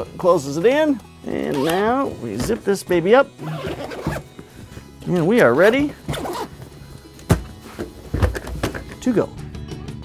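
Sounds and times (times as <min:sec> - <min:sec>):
background music: 0:00.0 - 0:10.0
backpack rustling: 0:01.3 - 0:02.8, 0:03.4 - 0:06.8.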